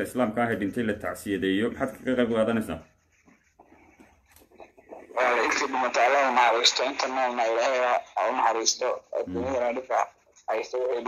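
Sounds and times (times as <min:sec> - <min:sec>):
person speaking loudly radio-like: 0:05.2 - 0:11.0.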